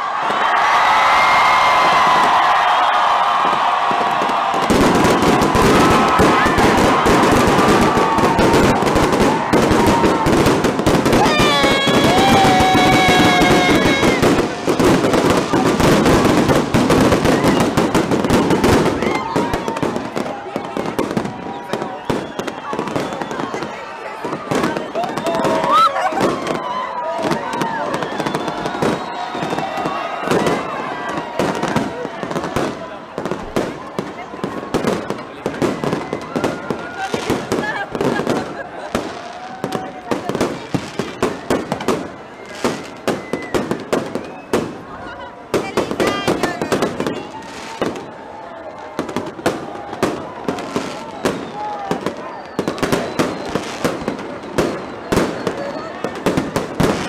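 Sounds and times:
crackle of fireworks: 0.0 - 57.0
crowd shouting and cheering: 0.0 - 57.0.

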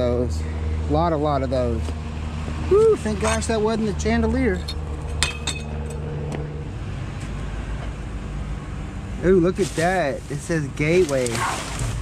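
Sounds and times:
vehicle engine idling: 0.0 - 12.0
sharp clinks and knocks: 4.9 - 6.0.

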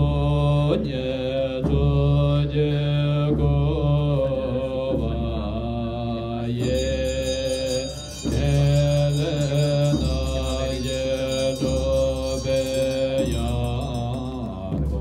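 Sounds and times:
monks chanting: 0.0 - 15.0.

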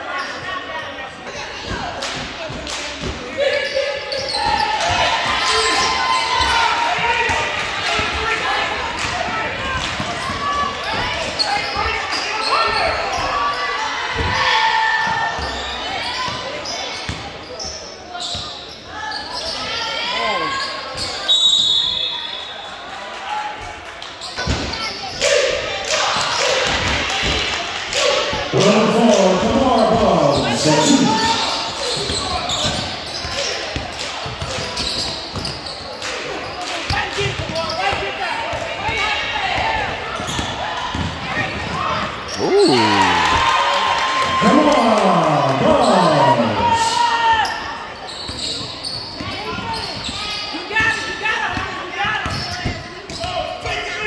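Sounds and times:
spectators talking and shouting: 0.0 - 23.8, 24.4 - 54.0.

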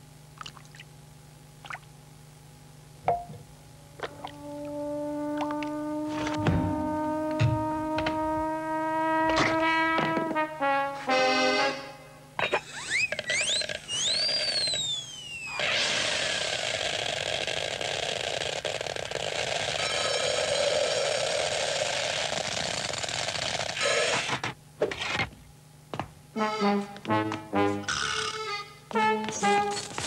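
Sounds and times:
held musical notes: 4.0 - 12.3, 26.4 - 30.0
whistling glides: 12.9 - 15.6.

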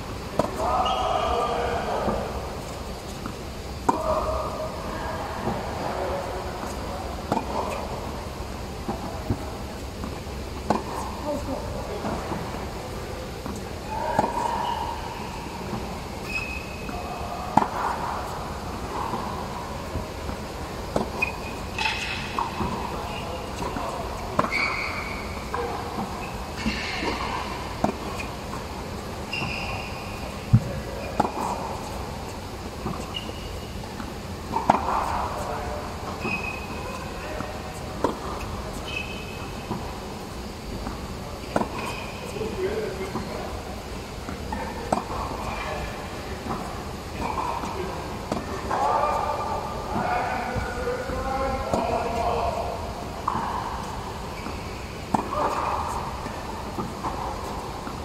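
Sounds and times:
voices from surrounding courts: 0.0 - 58.0
tennis ball struck with racket: 13.4 - 14.8.

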